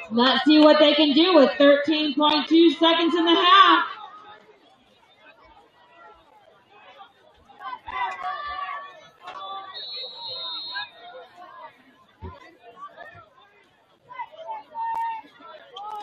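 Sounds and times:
crowd murmur: 0.0 - 16.0
spectators chatting: 0.0 - 16.0.

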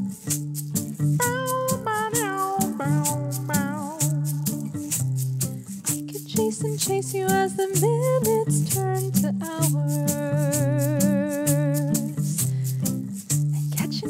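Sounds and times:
instrumental music with crisp beat: 0.0 - 14.0.

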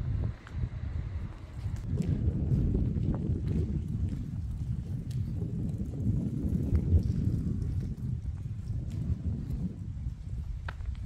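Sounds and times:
wind buffeting microphone: 0.0 - 11.0
footsteps on pavement: 0.1 - 11.0.

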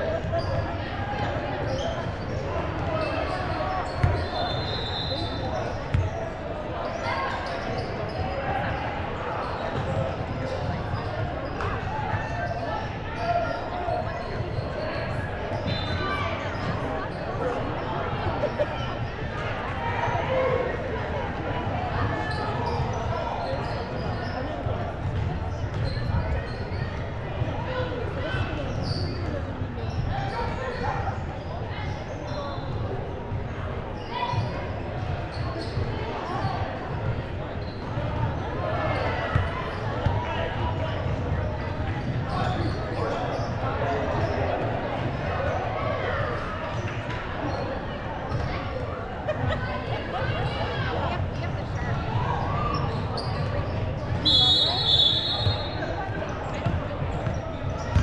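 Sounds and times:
chatter of many voices: 0.0 - 58.0.

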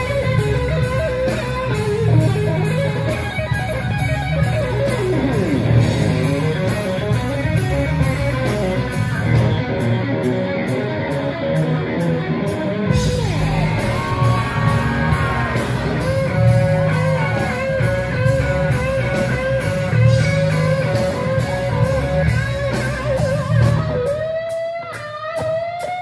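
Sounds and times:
bass guitar: 0.0 - 26.0
drums: 0.0 - 26.0
electric guitar solo: 0.0 - 26.0.

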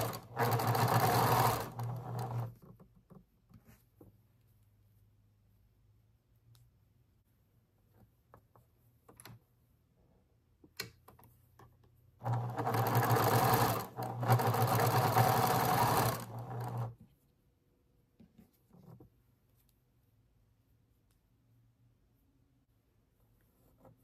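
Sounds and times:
sewing machine stitching: 0.0 - 2.8, 12.2 - 17.0.

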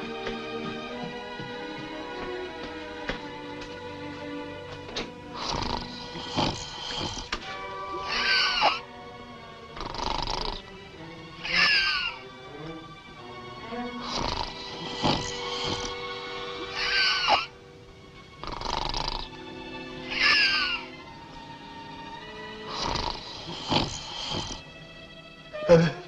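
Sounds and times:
soft orchestral music: 0.0 - 26.0
man snoring comically: 5.3 - 7.4, 8.0 - 8.8, 9.8 - 10.7, 14.0 - 16.0, 16.7 - 17.5, 18.4 - 19.4, 22.7 - 24.7.

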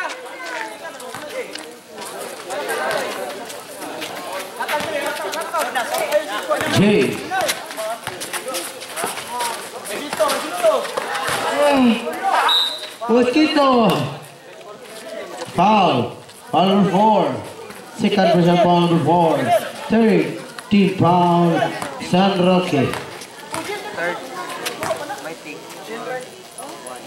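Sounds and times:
crowd voices calling and chattering: 0.0 - 27.0
high whistle: 12.4 - 13.0.

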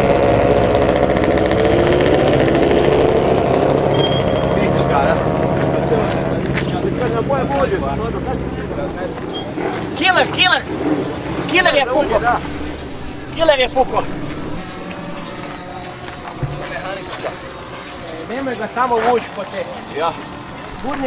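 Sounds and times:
motorcycle engine running: 0.0 - 19.5
people calling out: 1.6 - 21.0.

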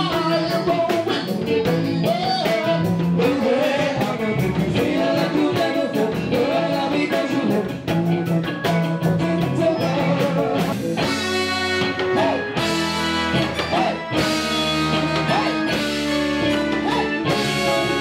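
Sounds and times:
person singing lead vocal: 0.0 - 12.8, 13.4 - 14.3, 15.0 - 18.0
drum kit steady beat: 0.0 - 18.0
electric guitar: 0.0 - 18.0.

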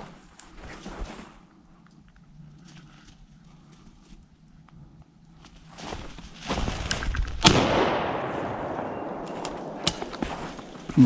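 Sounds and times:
shotgun shot with echo: 7.4 - 10.3.

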